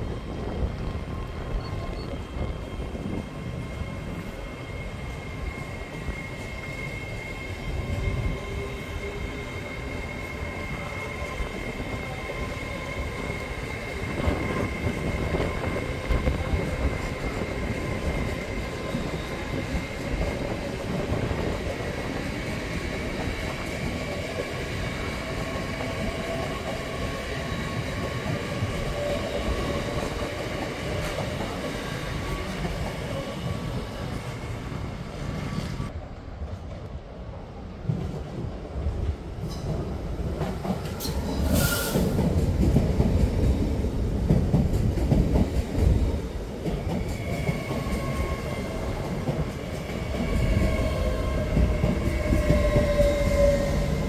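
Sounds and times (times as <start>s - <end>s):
train wheels rumbling on rail: 0.0s - 54.0s
train whine: 0.0s - 54.0s.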